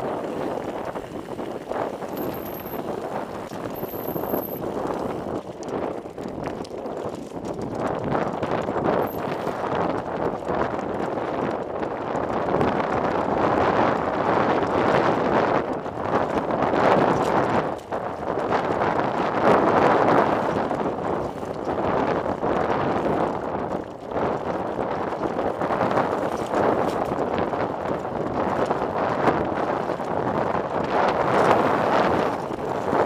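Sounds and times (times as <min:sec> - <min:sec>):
crunching over loose rock: 0:00.0 - 0:11.6
wind on microphone: 0:00.0 - 0:33.0.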